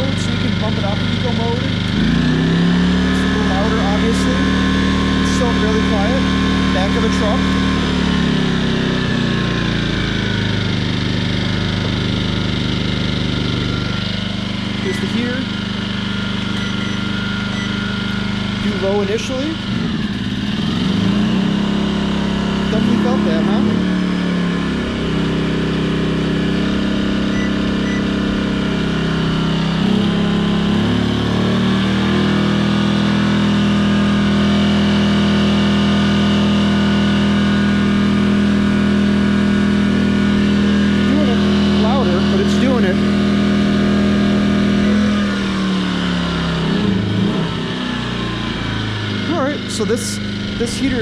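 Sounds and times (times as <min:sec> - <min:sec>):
generator engine running: 0:00.0 - 0:51.0.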